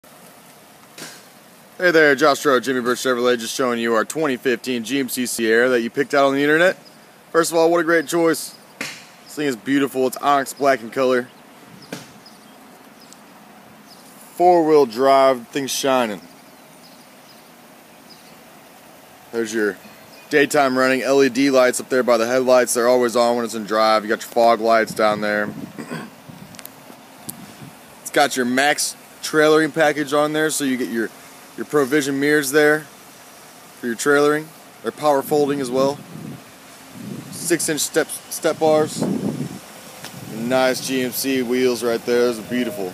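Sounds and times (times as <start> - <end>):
faint outdoor background noise: 0.0 - 42.9
faint background hiss: 0.1 - 42.9
man speaking: 1.8 - 8.6, 9.3 - 11.3, 14.3 - 16.2, 19.3 - 25.6, 28.1 - 32.9, 33.8 - 36.0, 37.3 - 39.1, 40.3 - 42.9.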